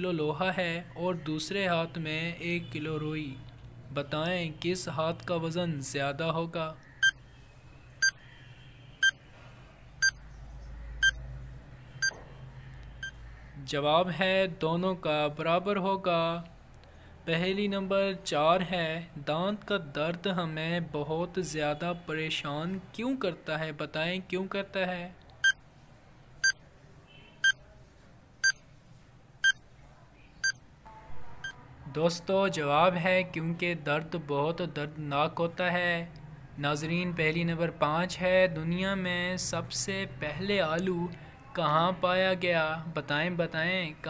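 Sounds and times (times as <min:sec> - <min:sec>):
short electronic beeps: 0:07.0 - 0:07.2, 0:09.0 - 0:09.2, 0:29.4 - 0:29.6.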